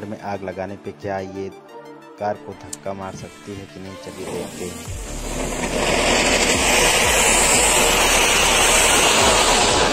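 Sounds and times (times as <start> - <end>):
firework fountain hissing: 4.1 - 9.9.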